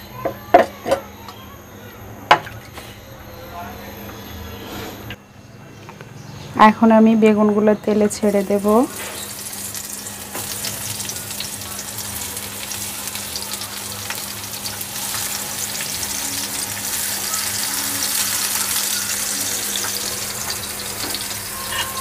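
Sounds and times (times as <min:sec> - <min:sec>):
eggplant slices sizzling in pan: 0:08.1 - 0:22.0.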